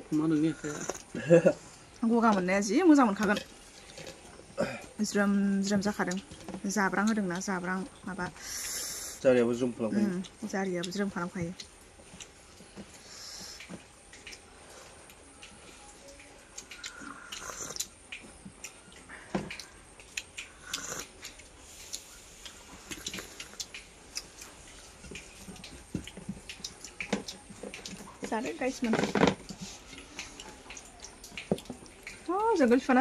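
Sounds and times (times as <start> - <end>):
sipping and slurping: 0.4 - 1.2, 3.2 - 4.9, 16.6 - 18.7, 19.6 - 28.2.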